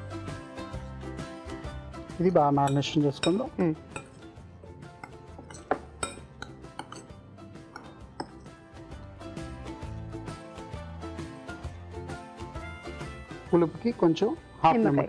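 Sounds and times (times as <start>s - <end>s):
background music: 0.0s - 15.0s
spoon clinking against glass bowl: 2.6s - 8.6s.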